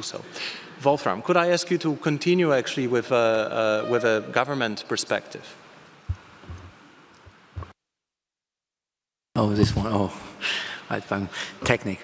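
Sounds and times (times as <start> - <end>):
microphone handling thumps: 6.1 - 6.8, 7.5 - 7.7, 9.4 - 10.1.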